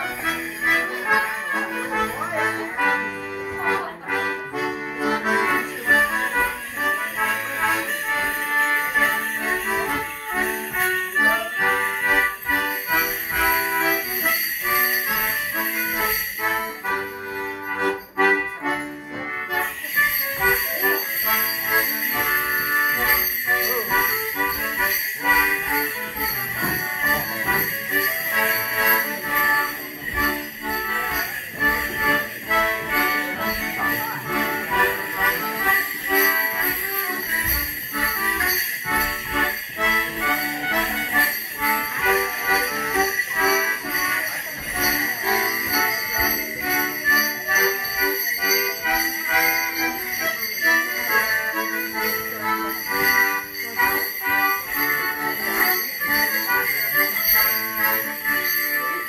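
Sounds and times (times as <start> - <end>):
leg bells jingling: 0.0 - 59.0.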